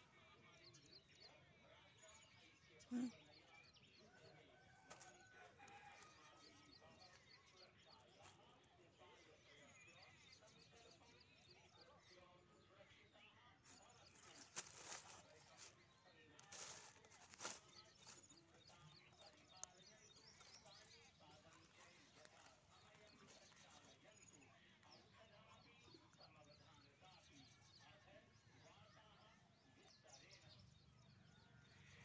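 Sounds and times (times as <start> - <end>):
dry corn husks rustling: 13.6 - 19.3.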